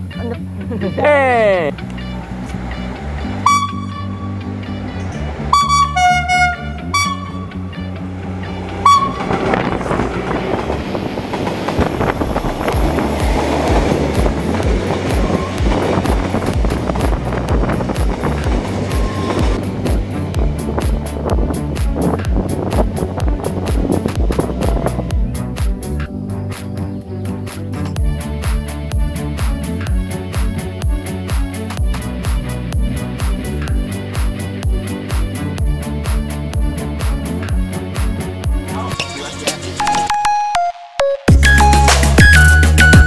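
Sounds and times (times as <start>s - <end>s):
freight train wagons rumbling: 0.0s - 26.0s
background music: 0.0s - 43.0s
train horn toots: 2.0s - 4.4s, 5.5s - 7.8s, 8.6s - 10.6s, 14.8s - 16.0s, 18.7s - 19.6s.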